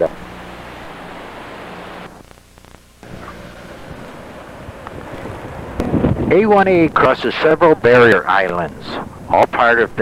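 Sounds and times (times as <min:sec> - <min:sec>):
wind rushing on microphone: 0:03.0 - 0:10.0.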